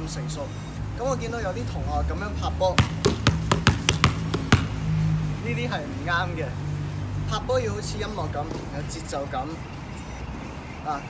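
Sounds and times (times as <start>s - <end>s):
background music: 0.0s - 11.0s
basketball bouncing on tiles: 2.8s - 4.8s.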